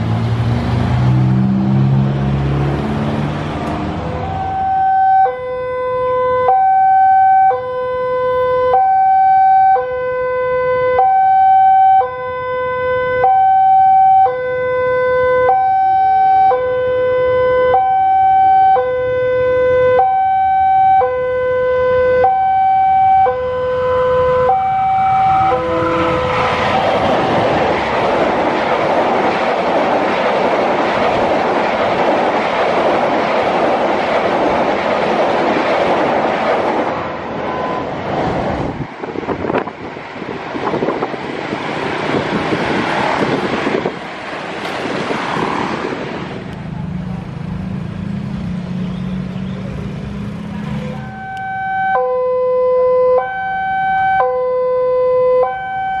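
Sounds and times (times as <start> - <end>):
train rushing over rails: 0.0 - 4.9, 24.2 - 51.5
two-tone level-crossing alarm: 4.2 - 26.9, 37.4 - 38.0, 51.0 - 56.0.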